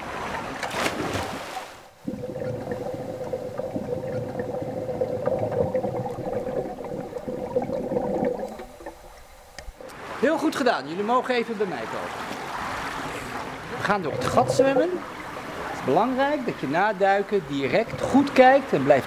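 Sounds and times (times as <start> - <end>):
muffled underwater water rush: 0.0 - 10.2, 12.1 - 16.7, 17.4 - 19.0
splash of diving into pool: 0.4 - 1.8
steady underwater hum: 1.6 - 10.2, 12.3 - 19.0.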